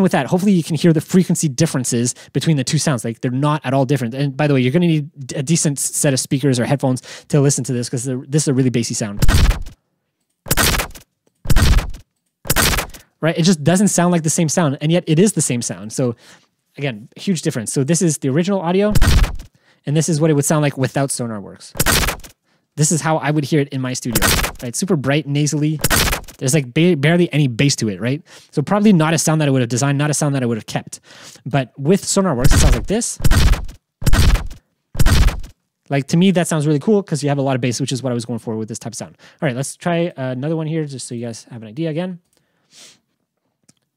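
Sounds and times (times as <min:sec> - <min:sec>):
heavy bass hits: 0:09.2 - 0:09.7, 0:10.5 - 0:13.0, 0:18.9 - 0:19.5, 0:32.4 - 0:35.5.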